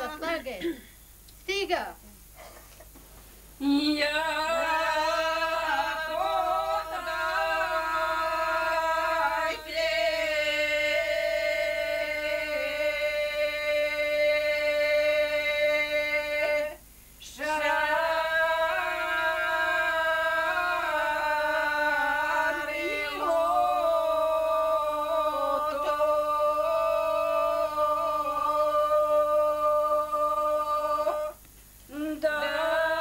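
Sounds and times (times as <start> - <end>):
women singing unaccompanied: 0.0 - 0.6, 3.6 - 33.0.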